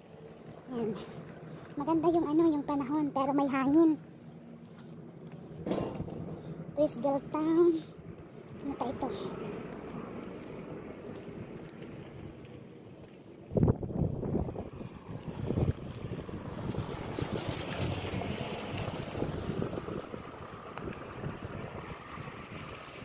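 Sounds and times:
wind buffeting microphone: 0:05.5 - 0:23.0.

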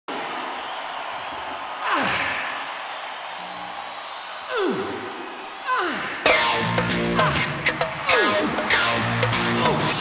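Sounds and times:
stadium crowd noise: 0:00.1 - 0:10.0
song music: 0:06.3 - 0:10.0.

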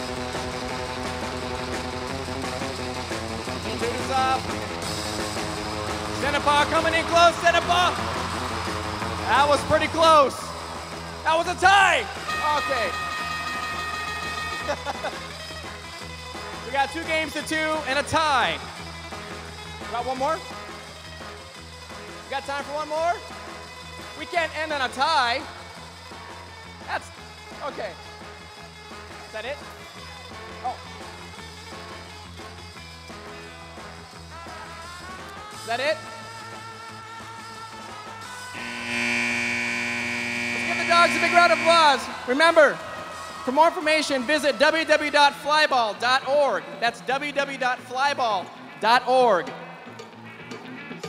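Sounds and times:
arena horn buzz: 0:11.3 - 0:15.0, 0:38.5 - 0:42.5
steady high tone: 0:38.6 - 0:42.3.

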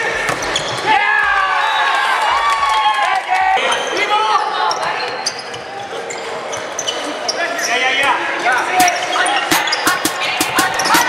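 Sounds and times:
players calling out: 0:08.6 - 0:11.0.

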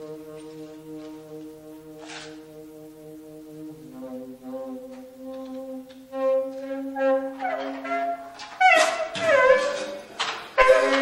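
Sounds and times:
soft percussion stroke: 0:00.0 - 0:08.4
saxophone holding notes: 0:00.0 - 0:11.0.

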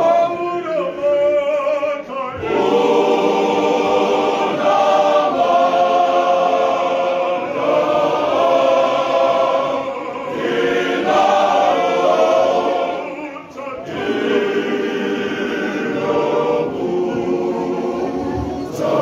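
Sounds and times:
male voice choir singing in harmony: 0:00.0 - 0:19.0.

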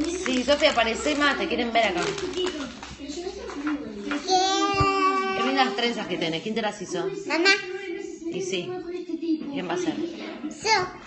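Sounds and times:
murmured voices: 0:00.0 - 0:11.0.

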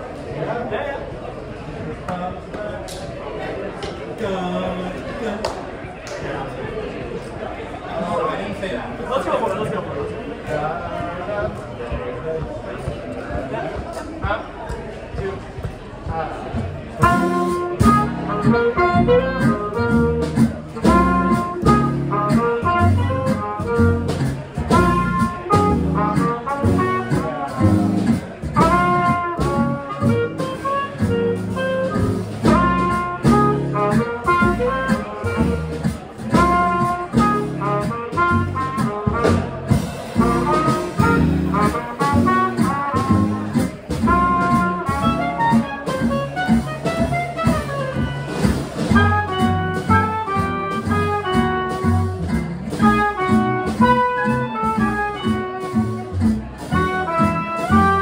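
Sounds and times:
drums: 0:08.8 - 0:58.0
upright bass: 0:11.0 - 0:58.0
acoustic guitar: 0:15.1 - 0:58.0
clarinet: 0:17.0 - 0:27.8, 0:28.5 - 0:58.0
trumpet: 0:17.0 - 0:58.0.

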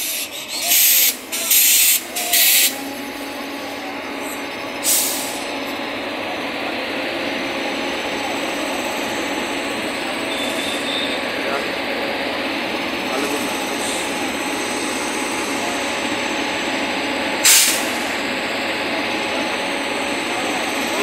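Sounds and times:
compressed air hiss: 0:00.0 - 0:02.8, 0:04.8 - 0:05.4, 0:17.4 - 0:17.9
electric locomotive running: 0:00.0 - 0:21.0.

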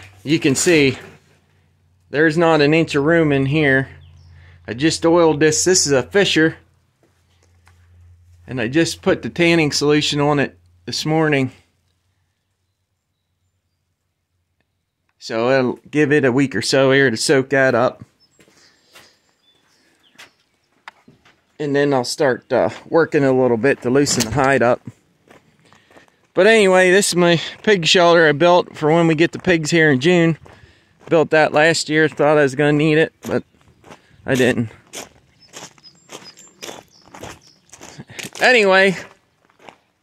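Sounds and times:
high bird chirps: 0:04.0 - 0:04.5, 0:35.3 - 0:38.2
footsteps on gravel: 0:18.3 - 0:21.5, 0:22.6 - 0:40.0.

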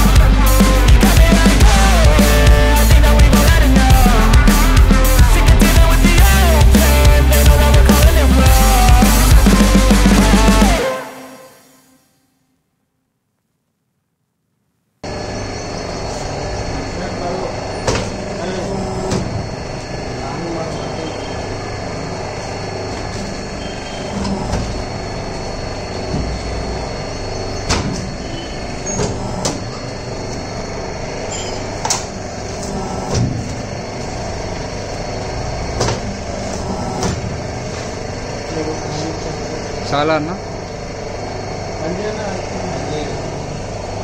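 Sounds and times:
machine mechanical hum: 0:15.0 - 0:44.0.

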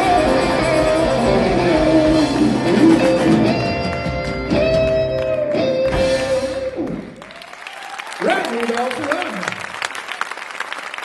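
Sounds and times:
live rock band playing: 0:00.0 - 0:07.2.

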